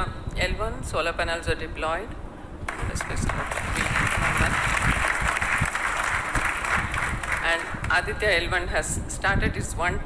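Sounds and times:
audience applauding: 2.7s - 8.0s.

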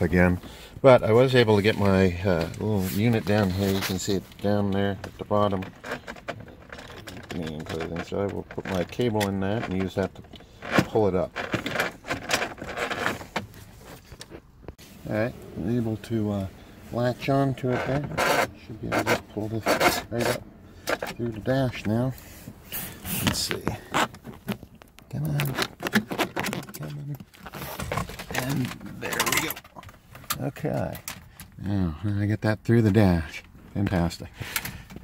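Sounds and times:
handling noise: 0.0s - 31.6s
cable scraping plastic trim: 1.6s - 14.4s, 17.3s - 22.2s, 22.8s - 31.1s.

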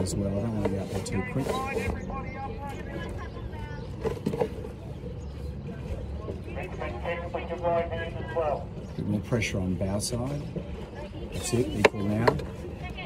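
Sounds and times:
steady low rumble: 1.2s - 11.8s.

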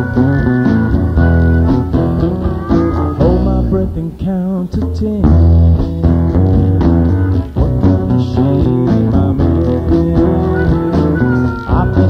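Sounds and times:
bass guitar: 0.0s - 12.0s
guitars: 0.0s - 12.0s
steady drum beat: 0.0s - 12.0s.

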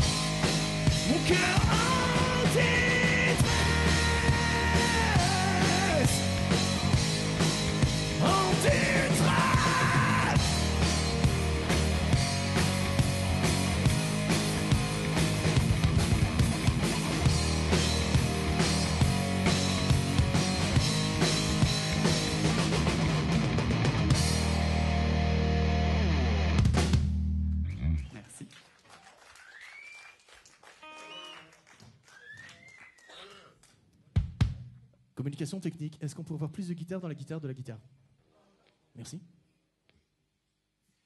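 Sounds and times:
live rock band: 0.0s - 28.0s
electric guitars: 0.0s - 28.1s
drums: 0.0s - 28.2s, 34.1s - 34.9s
bass guitar: 0.0s - 28.3s.

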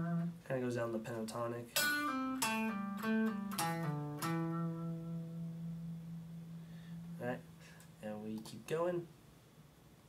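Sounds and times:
electric guitar lead notes: 1.8s - 7.9s.

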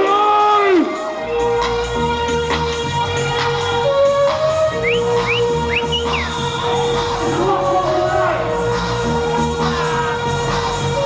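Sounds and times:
rave dance music: 0.0s - 11.0s
high whistle-like glides: 4.5s - 7.6s.

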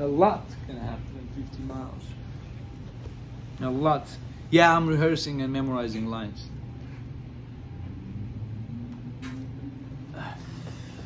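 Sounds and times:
low rumbling room hum: 0.0s - 11.0s.

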